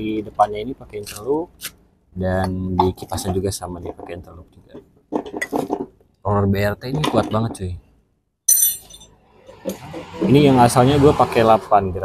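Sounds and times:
sharp metallic clink: 8.5s - 9.2s.

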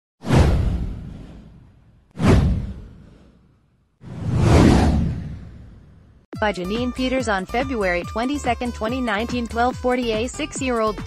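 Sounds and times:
whoosh: 0.2s - 6.2s.

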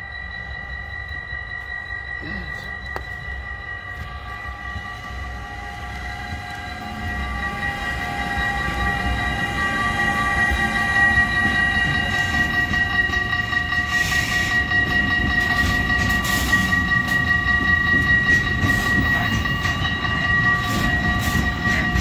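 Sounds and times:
crossing warning bell ringing: 0.0s - 22.0s
freight train rumbling past: 0.0s - 22.0s.

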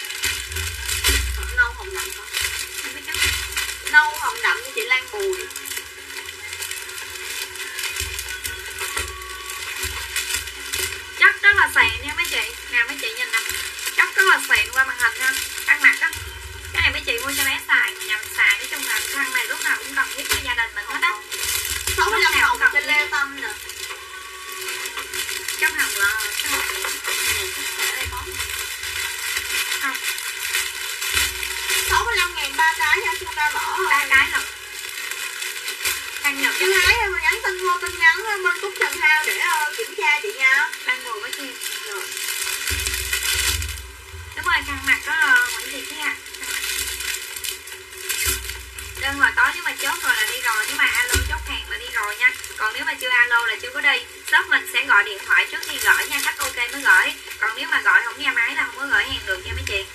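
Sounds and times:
steady hiss: 0.0s - 59.9s
person speaking: 21.9s - 23.6s, 25.6s - 28.4s, 31.9s - 34.6s, 44.4s - 46.2s.

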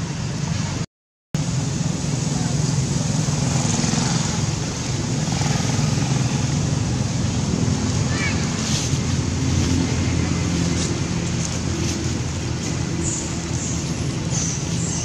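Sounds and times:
low rumble of distant traffic: 0.0s - 0.8s, 1.4s - 15.0s.

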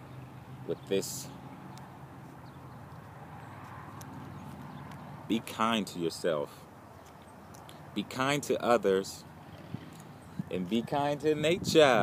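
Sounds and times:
wind rumbling on microphone: 9.6s - 12.0s.

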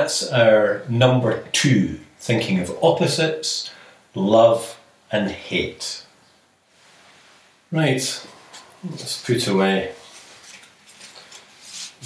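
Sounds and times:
paper cards rustling and tapping: 10.4s - 12.0s.

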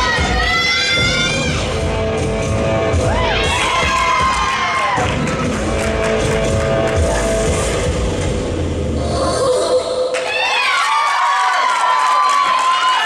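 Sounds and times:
upbeat music: 0.0s - 9.2s
group cheering and whooping: 3.0s - 6.1s, 9.0s - 13.0s.

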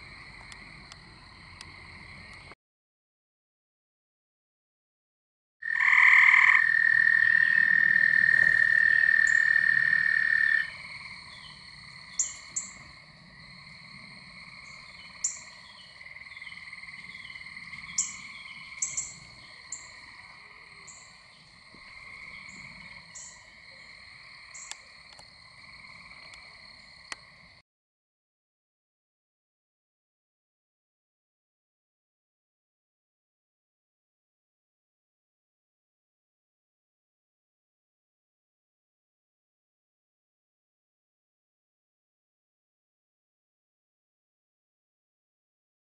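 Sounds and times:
loud frog trill: 5.6s - 10.9s
chorus of trilling frogs: 5.6s - 27.6s.

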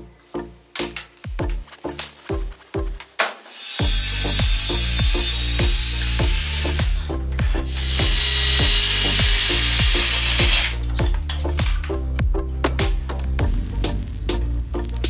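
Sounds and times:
music with steady bass beat: 0.0s - 3.1s, 3.8s - 15.0s
electric drill boring into metal: 3.5s - 11.0s.

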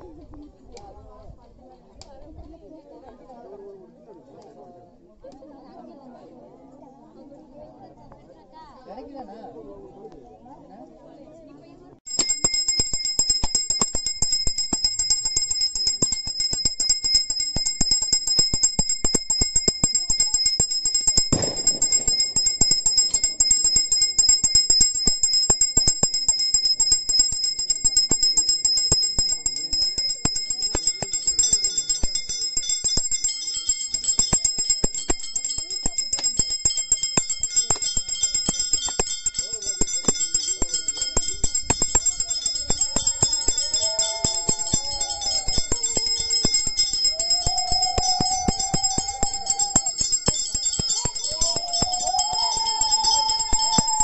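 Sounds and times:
hand bell ringing rapidly: 12.1s - 54.0s
ringing tones: 12.1s - 54.0s.

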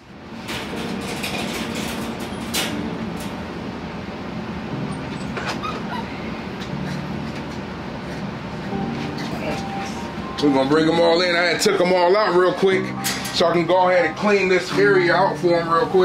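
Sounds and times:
low rumbling room noise: 0.0s - 16.0s
puppies whining: 4.8s - 10.1s.

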